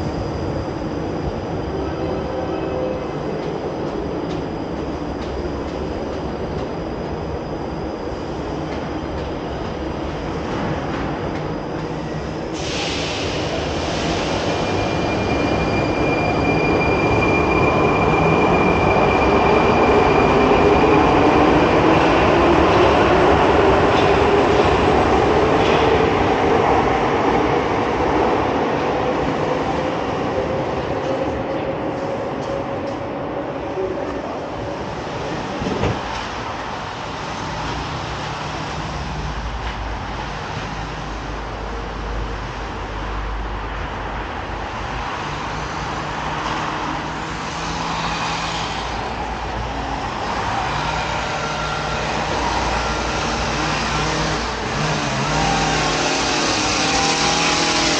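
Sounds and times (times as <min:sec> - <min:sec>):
train air hiss: 0:12.4 - 0:16.6.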